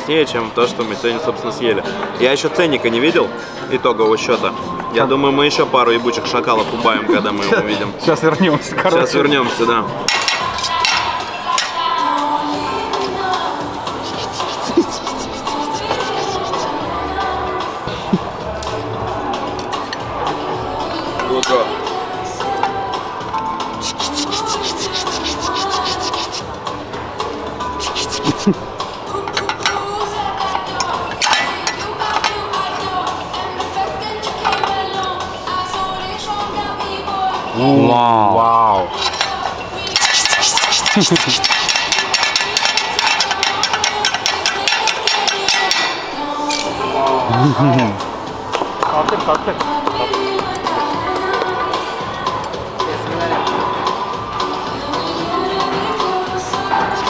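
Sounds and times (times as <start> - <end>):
music: 0.0 - 57.0
restaurant background noise: 0.0 - 57.0
knife and fork scraping plate: 14.0 - 16.8, 23.8 - 26.4, 27.8 - 28.5, 39.0 - 44.2
cutlery scraping metal tray: 39.0 - 45.9.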